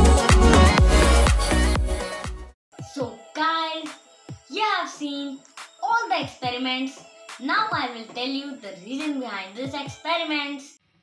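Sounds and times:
boy's voice: 2.8s - 10.7s.

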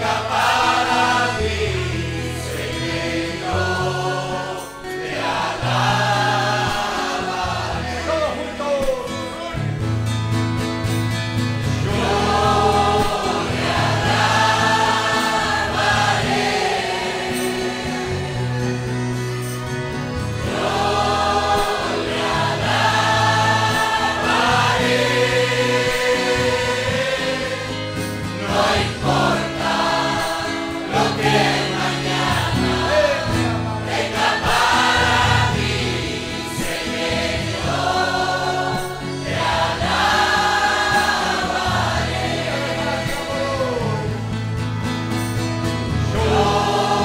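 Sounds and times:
congregation singing a hymn: 0.0s - 9.7s, 11.5s - 47.0s
instrumental accompaniment: 0.0s - 47.0s.

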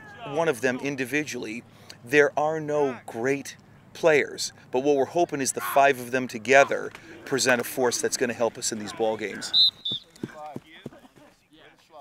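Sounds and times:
players shouting: 0.0s - 1.1s, 4.8s - 11.2s.

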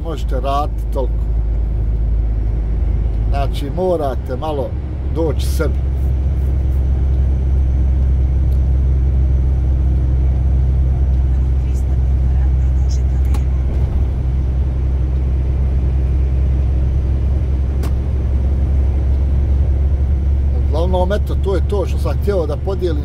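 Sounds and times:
truck engine drone: 0.0s - 23.0s.

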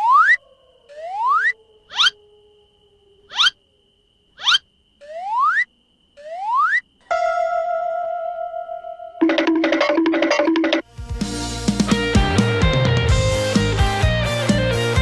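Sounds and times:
rising whistle-like pitch glides: 7.0s - 9.3s
held electronic chord: 7.0s - 10.8s.

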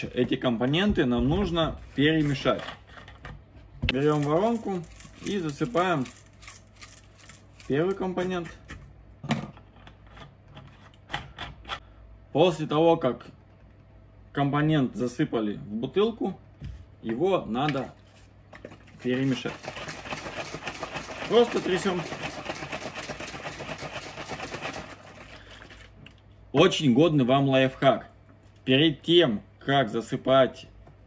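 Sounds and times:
water sloshing in shaken bottle: 17.8s - 26.1s.

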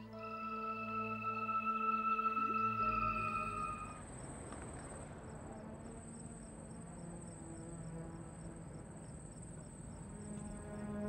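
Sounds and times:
crickets chirping: 0.0s - 11.0s
soft background music: 0.0s - 11.0s.

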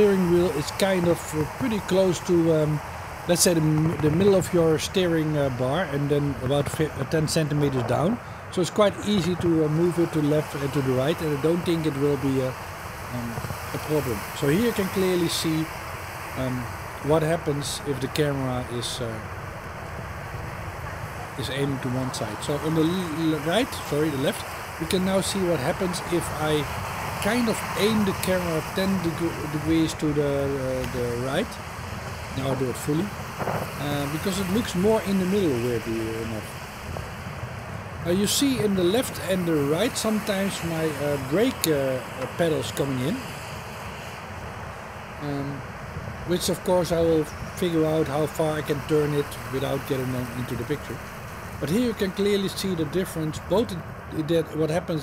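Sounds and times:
faint high whine: 0.0s - 55.0s
road noise: 0.0s - 55.0s
wind rumble: 0.0s - 55.0s.

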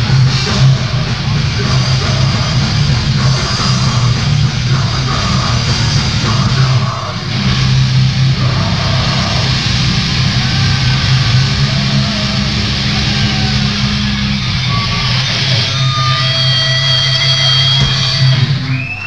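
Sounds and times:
distorted guitars and bass: 0.0s - 19.0s
fast drumming: 0.0s - 19.0s
high guitar feedback tones: 0.0s - 19.0s.

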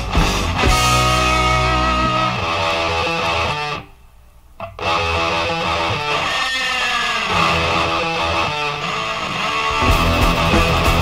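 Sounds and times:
heavy metal band playing: 0.0s - 3.7s, 4.8s - 11.0s.

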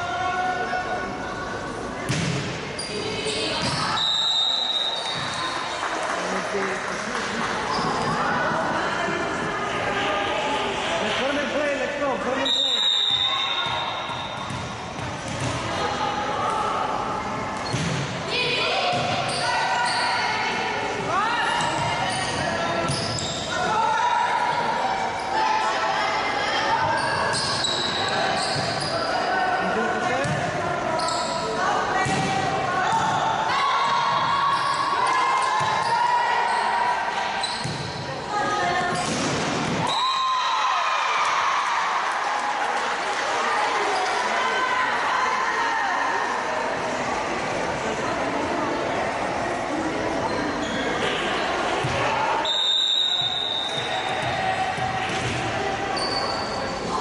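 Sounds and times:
volleyball being hit and bouncing: 2.0s - 2.6s, 13.5s - 15.8s, 38.8s - 40.0s, 53.6s - 55.7s.

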